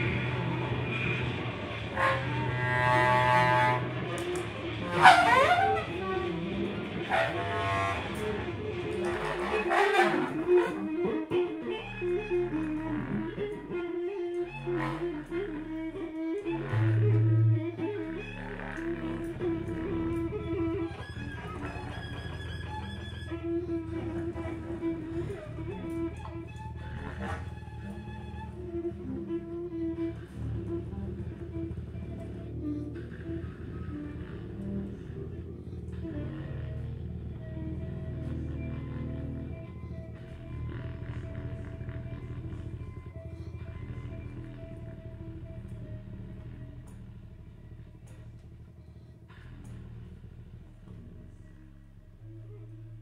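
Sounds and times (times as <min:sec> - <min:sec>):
bowed cello: 0:00.0 - 0:53.0
contrabass clarinet: 0:00.0 - 0:53.0.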